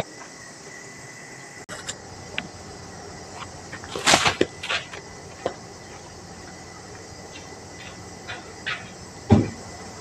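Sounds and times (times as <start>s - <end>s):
loud dull knock: 9.3s - 9.6s.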